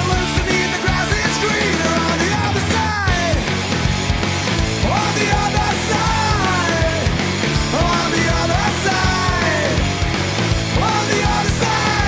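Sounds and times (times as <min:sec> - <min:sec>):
fast drum beat: 0:00.0 - 0:12.0
rock music: 0:00.0 - 0:12.0.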